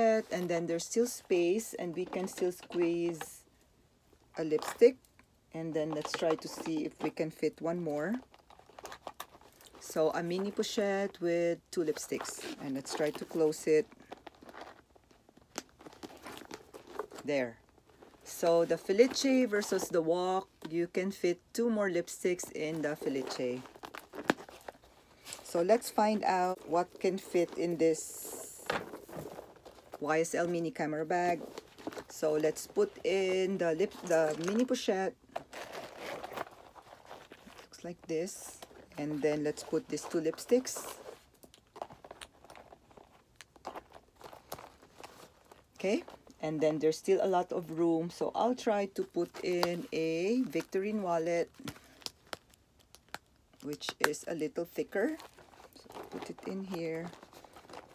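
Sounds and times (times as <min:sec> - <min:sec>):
faint rustling in handbag: 0:11.8 - 0:20.0, 0:22.4 - 0:46.4, 0:54.7 - 0:57.9.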